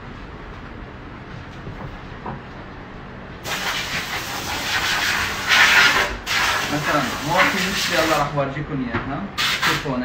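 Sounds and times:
compressed air hissing: 3.4s - 8.3s, 9.4s - 9.9s.

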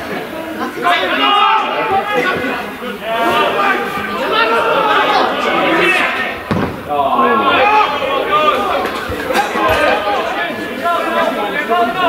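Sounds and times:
men shouting: 0.8s - 12.0s
football kicked hard: 6.5s - 6.9s.

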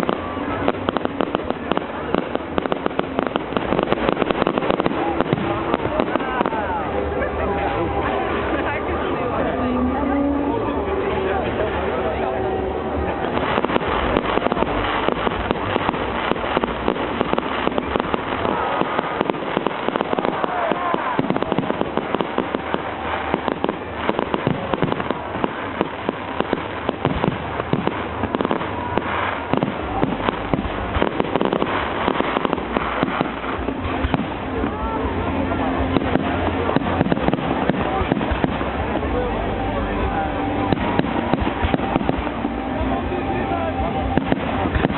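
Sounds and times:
fireworks bangs and crackles: 0.0s - 10.3s, 13.0s - 44.9s.

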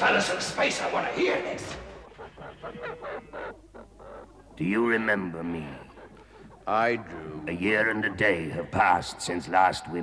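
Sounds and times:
fowl honking calls: 1.7s - 8.6s.

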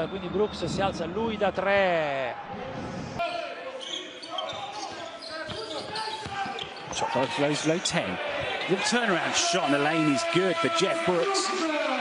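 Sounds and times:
voices echoing in hall: 0.0s - 12.0s
shoes squeaking on court: 3.8s - 8.8s.

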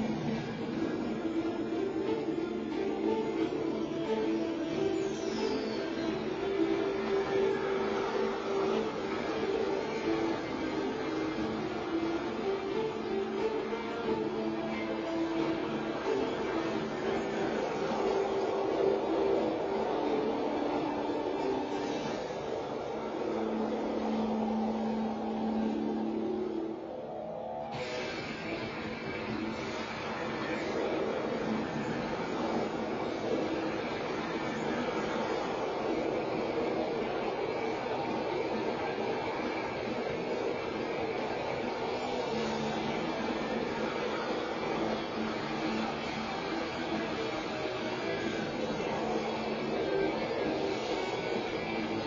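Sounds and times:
film soundtrack over theater speakers: 0.0s - 52.0s
steady rushing noise: 0.0s - 52.0s.

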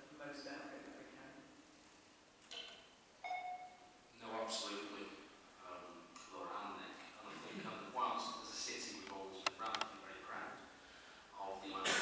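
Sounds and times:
short ringing ding: 3.2s - 3.9s
sharp click: 9.0s - 9.9s.

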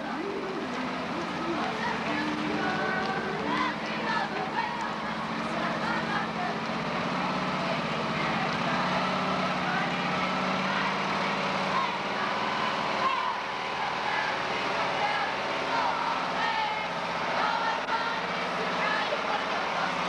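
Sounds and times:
people talking in crowd: 0.0s - 20.0s
truck engine running: 0.0s - 20.0s.

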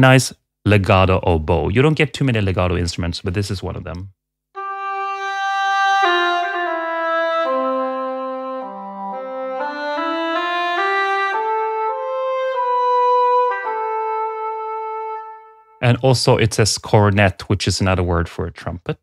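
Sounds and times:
oboe playing slow melody: 4.6s - 15.8s.

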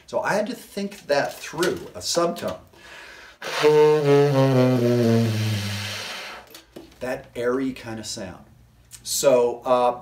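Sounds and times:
tenor saxophone playing: 3.4s - 6.5s.

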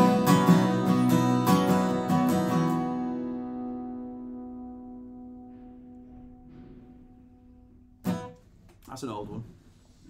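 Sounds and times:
sharp guitar strum: 0.0s - 7.2s, 8.0s - 8.4s
acoustic guitar chord ringing: 0.0s - 8.4s
man speaking: 8.9s - 9.5s.

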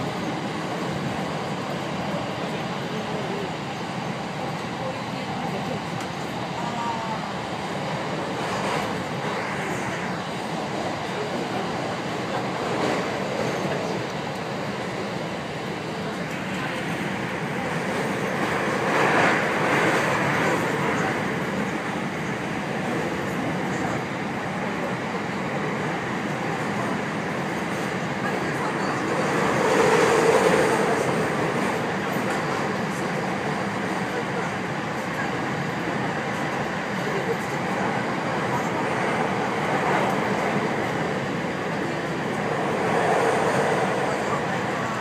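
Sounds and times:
electric train running rumble: 0.0s - 45.0s.

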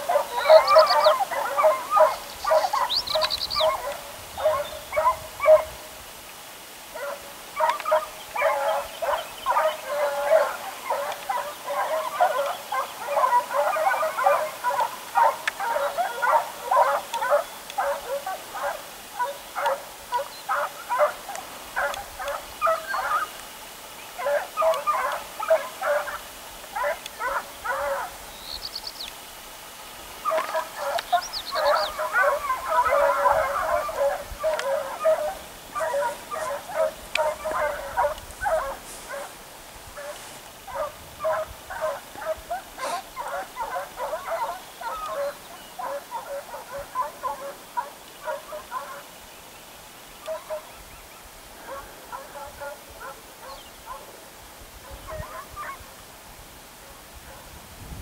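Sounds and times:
distant hounds baying: 0.0s - 5.8s, 6.8s - 28.3s, 30.0s - 49.2s, 50.2s - 50.8s, 51.4s - 55.8s.

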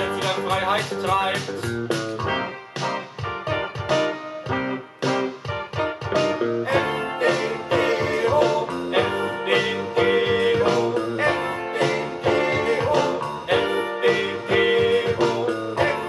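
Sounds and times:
guitar-led song from vinyl record: 0.0s - 16.0s.

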